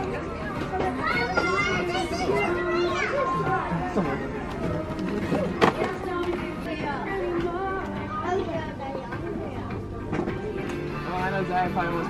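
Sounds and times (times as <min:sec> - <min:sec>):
children's voices: 0:00.0 - 0:09.8
background music: 0:00.0 - 0:12.0.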